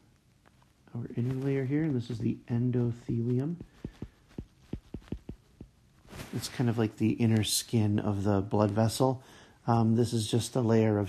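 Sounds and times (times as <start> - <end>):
stylus tapping on drawing tablet: 3.6 - 5.8.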